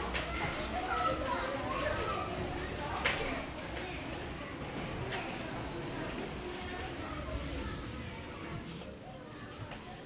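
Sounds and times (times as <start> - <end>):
children playing and chattering: 0.0 - 10.0.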